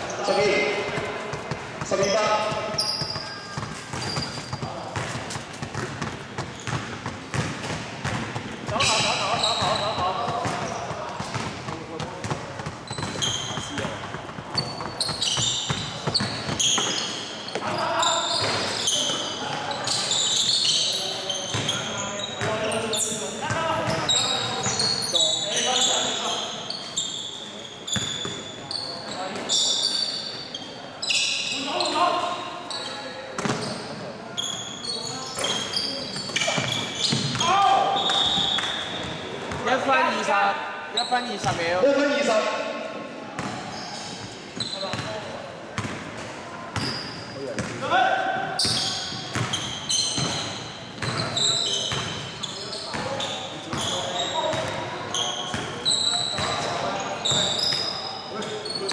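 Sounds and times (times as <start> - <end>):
sneaker squeaks: 0.0 - 40.3, 40.9 - 42.8, 43.4 - 58.9
basketball bouncing: 0.6 - 17.7, 36.3 - 37.5, 48.6 - 52.2
players calling out: 8.6 - 40.3.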